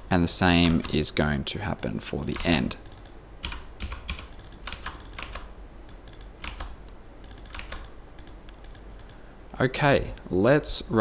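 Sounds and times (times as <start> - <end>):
typing on computer keyboard: 0.6 - 1.0, 1.8 - 9.2.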